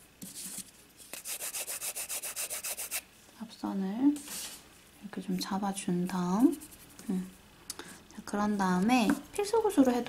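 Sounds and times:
nail file rubbing on nail: 1.1 - 3.0.

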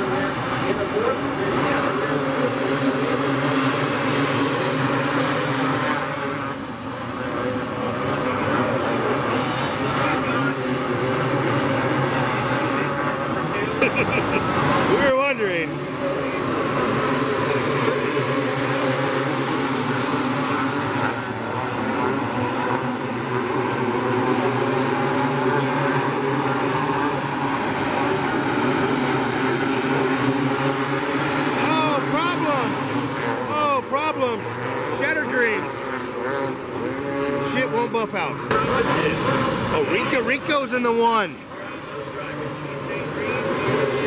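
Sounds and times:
dirt kart engines racing: 0.0 - 44.0.

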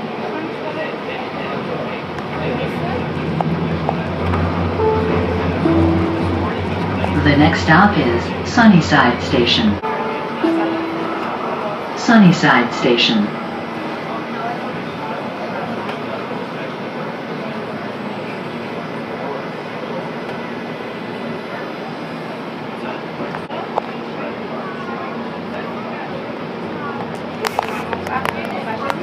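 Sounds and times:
train cabin rumble and hum: 0.0 - 23.9, 25.5 - 29.0
passengers talking faintly: 0.0 - 29.0.

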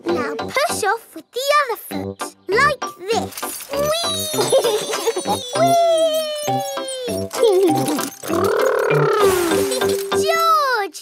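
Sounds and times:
bright children's music: 0.0 - 10.8
cartoon child crying whee: 4.3 - 7.3.

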